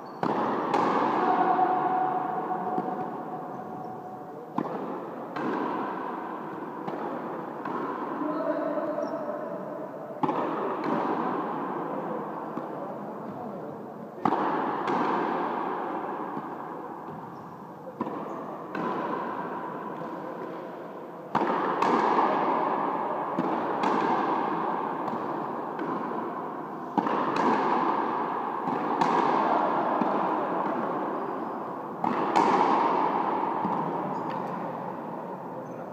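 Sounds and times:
rackets striking rubber ball: 0.0s - 3.5s, 21.3s - 31.2s, 32.0s - 35.2s
ball hitting concrete wall: 0.1s - 3.5s, 4.5s - 8.2s, 18.0s - 26.3s, 26.9s - 31.2s, 32.0s - 35.2s.

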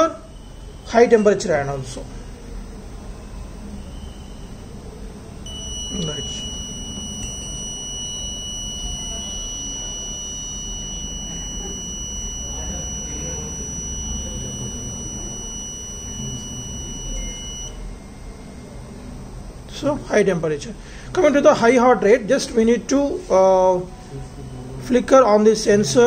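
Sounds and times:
high-pitched buzzer tone: 5.4s - 18.6s.

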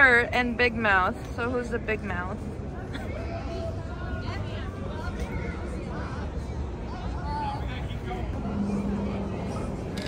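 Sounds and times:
city street rumble: 0.0s - 10.0s.

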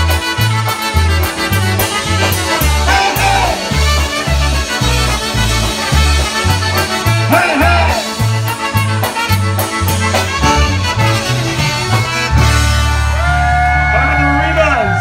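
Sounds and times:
polka band playing: 0.0s - 15.0s.

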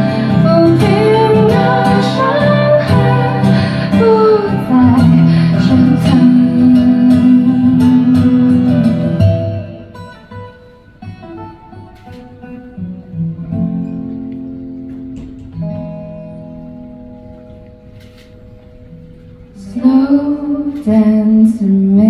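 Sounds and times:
acoustic guitar ballad: 0.0s - 22.0s.

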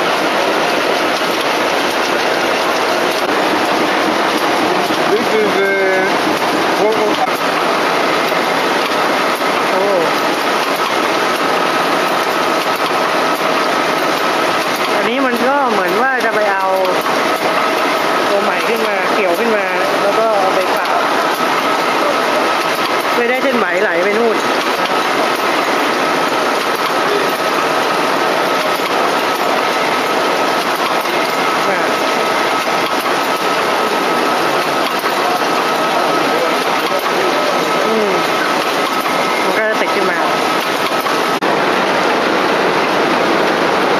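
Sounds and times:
reeling machine running: 0.0s - 43.9s.

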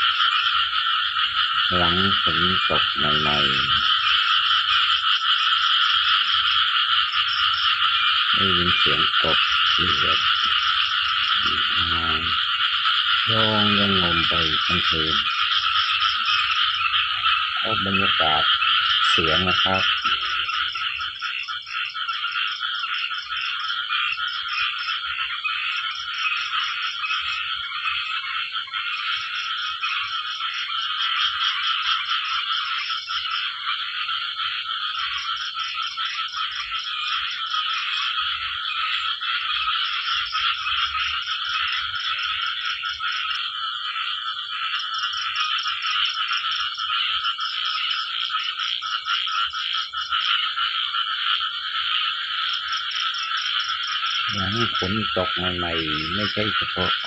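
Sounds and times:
chorus of frogs calling: 0.0s - 57.0s.

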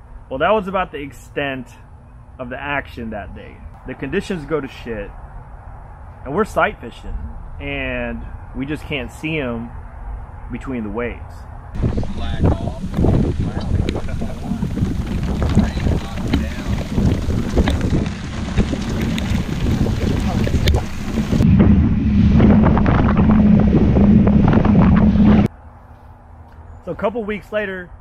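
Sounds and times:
steady low hum: 0.0s - 26.7s
wind buffeting microphone: 3.7s - 25.5s
waves slapping boat hull: 11.8s - 21.5s.

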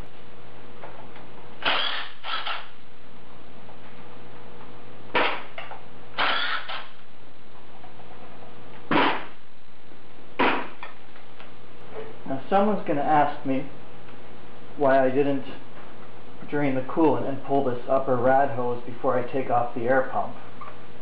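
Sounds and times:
impact wrench bursts: 1.6s - 2.8s, 5.1s - 7.0s.

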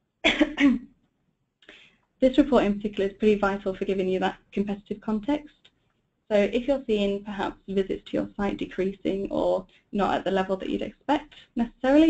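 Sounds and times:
woman coughing: 0.2s - 0.8s
faint breath in: 1.6s - 2.0s.

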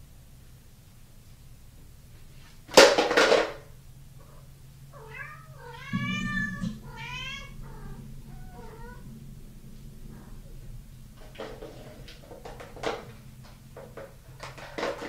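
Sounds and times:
cat meowing: 5.0s - 9.0s.

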